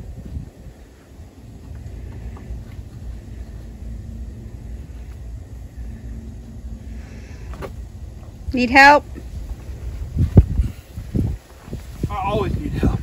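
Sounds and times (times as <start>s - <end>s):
faint hum: 0.0s - 13.0s
low rumble: 0.0s - 13.0s.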